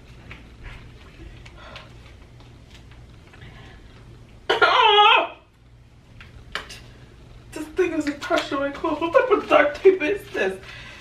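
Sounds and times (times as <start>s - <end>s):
woman crying out in strain: 4.5s - 5.5s.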